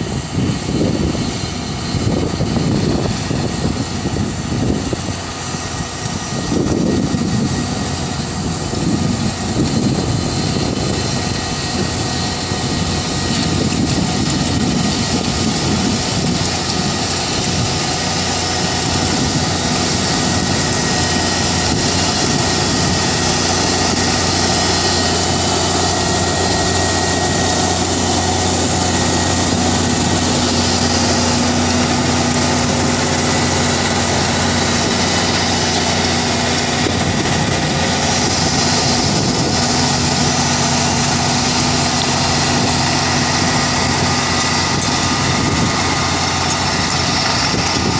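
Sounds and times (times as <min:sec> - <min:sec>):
tractor diesel engine under load: 0:00.0 - 0:47.9.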